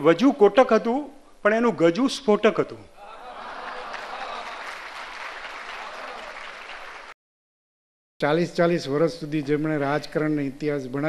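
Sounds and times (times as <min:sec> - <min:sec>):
audience applauding: 0:03.2 - 0:07.2.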